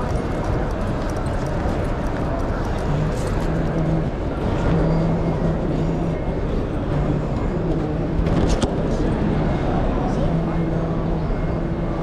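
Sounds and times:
busy walkway background rumble: 0.0s - 12.0s
low voice droning held notes: 0.0s - 12.0s.

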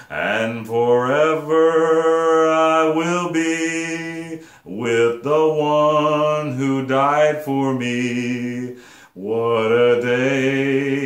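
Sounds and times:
man singing slow hymn: 0.0s - 11.0s.

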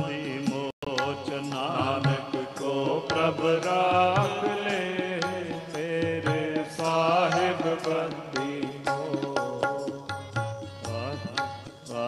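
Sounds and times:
men singing: 0.0s - 12.0s.

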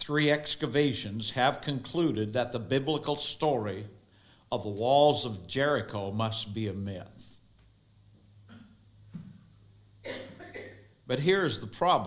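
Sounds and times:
low electrical hum: 0.0s - 12.0s
man coughing: 10.0s - 10.9s.

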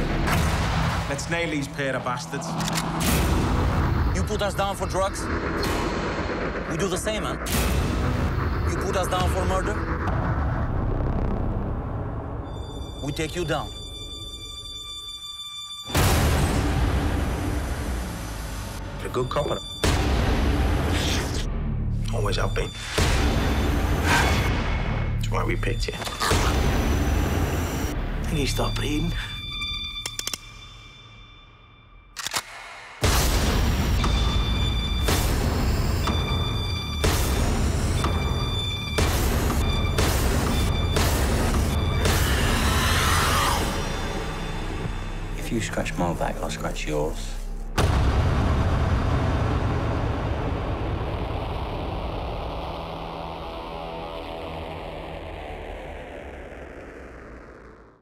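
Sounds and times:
loud boom impact: 0.0s - 1.5s, 47.8s - 53.7s
dark film trailer music: 0.0s - 58.0s.

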